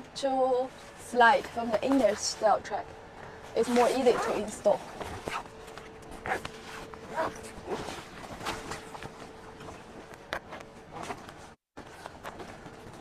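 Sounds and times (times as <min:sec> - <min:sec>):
faint steady hum: 0:00.0 - 0:13.0
tent fabric rustling and knocking: 0:03.7 - 0:13.0.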